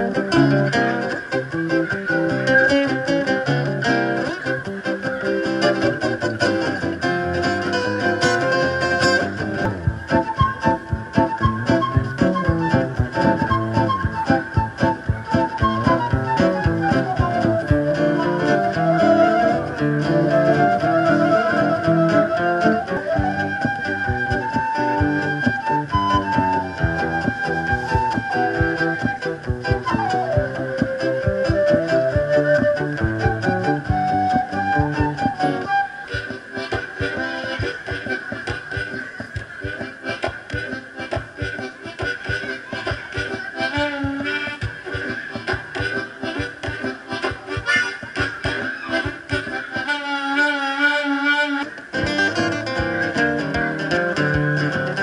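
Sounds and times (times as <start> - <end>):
acoustic guitar chords: 0.0 - 49.8, 51.6 - 55.0
harmonica bending notes: 0.0 - 55.0.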